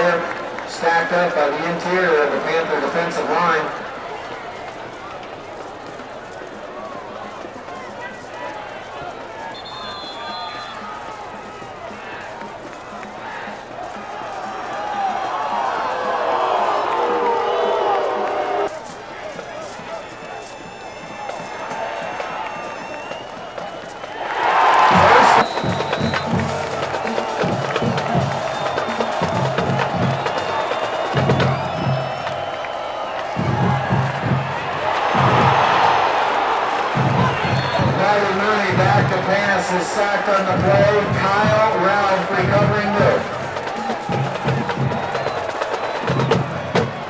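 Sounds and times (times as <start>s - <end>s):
stadium crowd din: 0.0s - 47.0s
voices up close: 0.0s - 47.0s.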